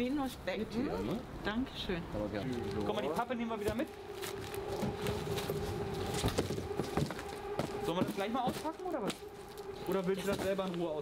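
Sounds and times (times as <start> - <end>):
steady hum: 0.1 - 11.0.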